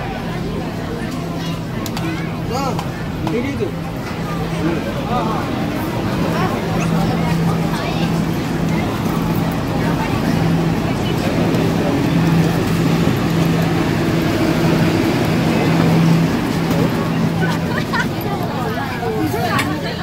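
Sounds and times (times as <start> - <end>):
passengers murmuring: 0.0 - 20.0
subway train hum: 0.0 - 20.0
train rumble: 0.0 - 20.0.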